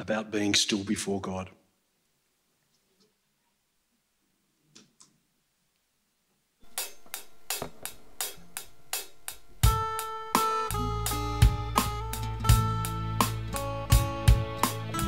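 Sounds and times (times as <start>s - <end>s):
steady ticking beat: 6.6s - 15.0s
bass guitar: 9.6s - 15.0s
electric guitars: 9.6s - 15.0s.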